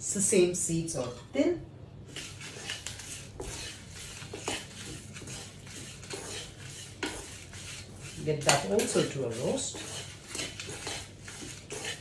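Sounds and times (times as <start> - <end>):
metal spoon scraping a pan: 2.1 - 12.0.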